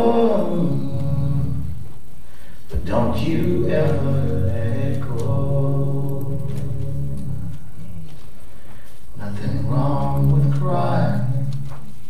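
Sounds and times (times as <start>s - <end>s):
man singing: 0.0s - 1.9s, 2.7s - 8.2s, 9.2s - 11.9s
gospel song: 0.0s - 12.0s.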